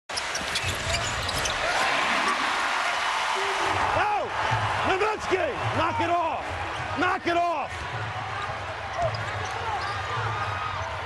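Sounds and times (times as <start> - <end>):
shoes squeaking on court: 0.1 - 1.8, 8.9 - 10.3
arena crowd noise: 0.1 - 11.0.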